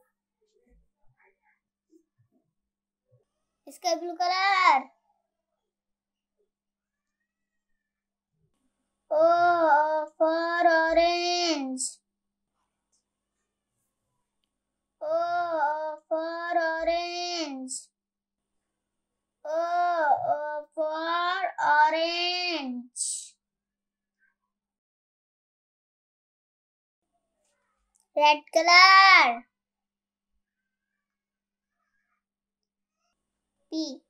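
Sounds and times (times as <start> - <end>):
child singing: 9.1 - 11.9, 15.0 - 17.8, 19.5 - 23.2, 28.2 - 29.4.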